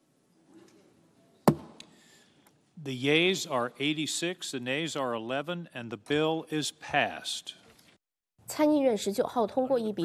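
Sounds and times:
faint hall room noise: 0.0s - 10.0s
sharp wooden knock: 1.5s - 1.8s.

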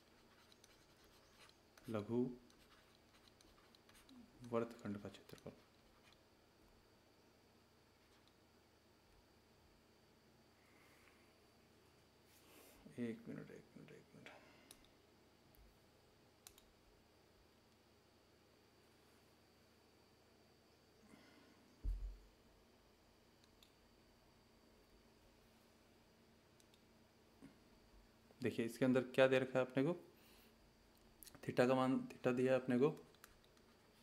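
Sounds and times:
pen tip ticking and scratching: 0.0s - 1.9s
faint computer mouse click: 16.4s - 16.7s, 23.4s - 23.8s, 26.6s - 26.9s.

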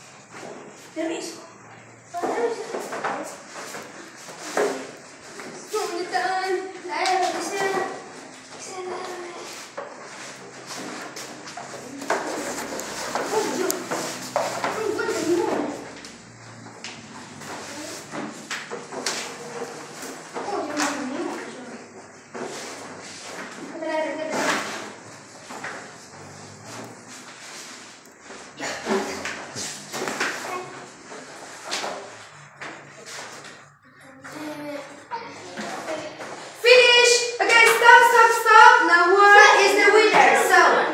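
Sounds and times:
children talking and calling out: 5.6s - 9.8s, 11.8s - 16.1s, 33.6s - 40.9s.

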